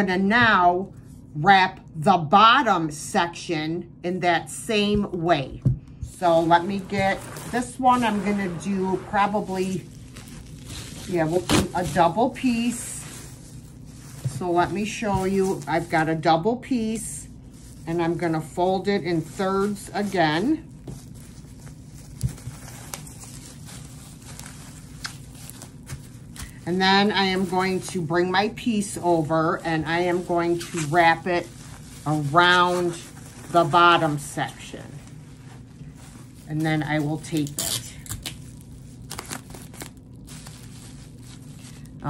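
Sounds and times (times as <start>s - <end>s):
bubble wrap crinkling: 6.1s - 42.0s.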